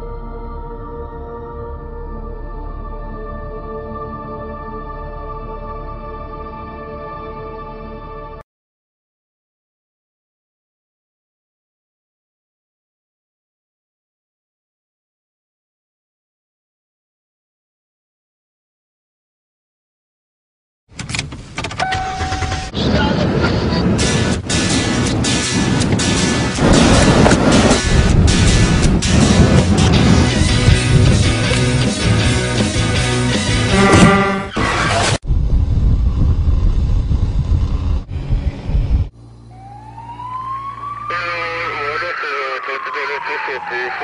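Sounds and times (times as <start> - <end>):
car running noise: 20.9 - 32.9, 33.5 - 39.3
loud music in a car: 25.0 - 34.5
short electronic tone: 33.7 - 34.6
emergency vehicle siren: 39.4 - 44.0
voices: 41.1 - 44.0.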